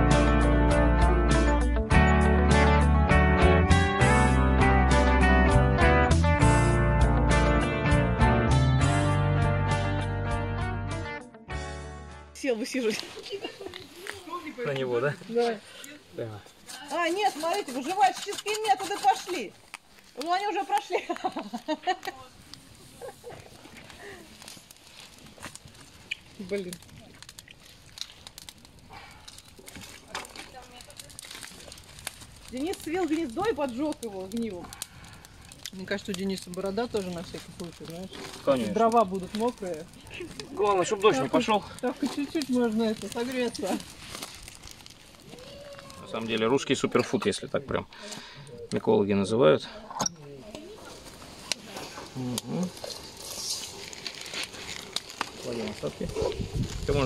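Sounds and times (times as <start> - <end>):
small fire crackling and popping: 12.4 - 57.0
metal spoon scraping steel pot: 16.6 - 19.5.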